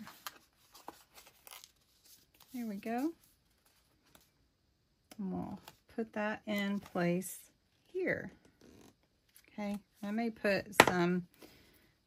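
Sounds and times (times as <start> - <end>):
paper rustling: 0.0 - 4.3.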